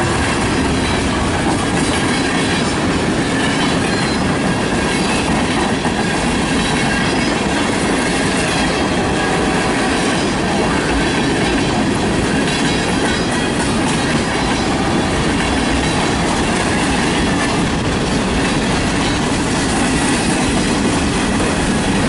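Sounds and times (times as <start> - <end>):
freight train rumbling past: 0.0 - 22.0.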